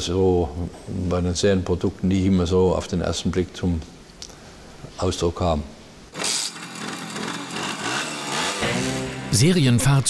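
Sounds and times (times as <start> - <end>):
two-stroke scooter engine running: 6.2 - 9.3.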